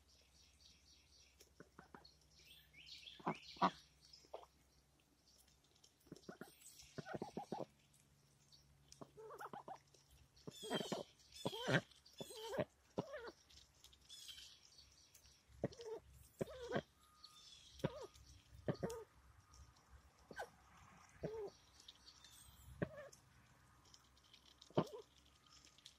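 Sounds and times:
ducks quacking: 0:03.2 - 0:04.5, 0:06.3 - 0:07.7, 0:10.6 - 0:13.3.

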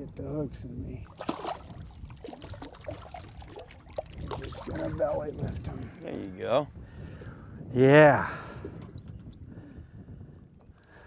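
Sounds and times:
fish splashing in water: 0:01.0 - 0:05.0
water sloshing: 0:01.0 - 0:06.0.

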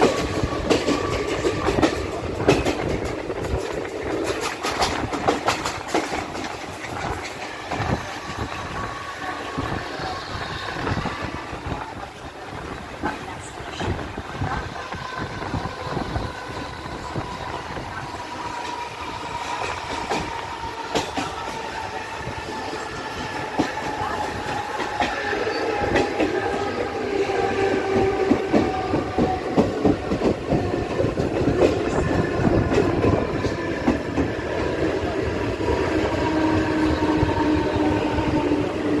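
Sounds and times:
train wheels clattering over rails: 0:00.0 - 0:12.0, 0:12.7 - 0:39.0.

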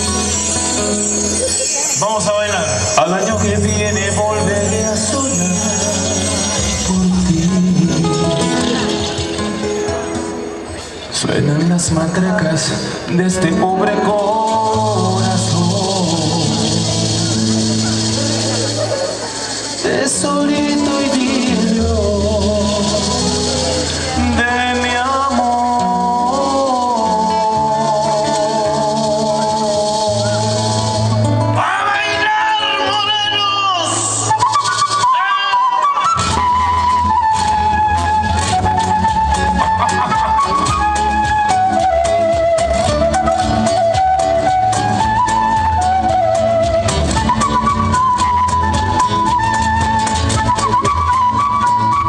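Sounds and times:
flute melody with vibrato: 0:00.0 - 0:10.8, 0:13.3 - 0:52.0
bass guitar: 0:00.0 - 0:52.0
percussion: 0:00.0 - 0:52.0
strummed acoustic guitars: 0:00.0 - 0:52.0.

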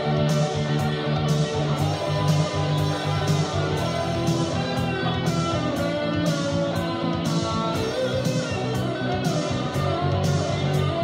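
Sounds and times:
lead electric guitar melody: 0:00.0 - 0:11.0
steady drum beat: 0:00.0 - 0:11.0.

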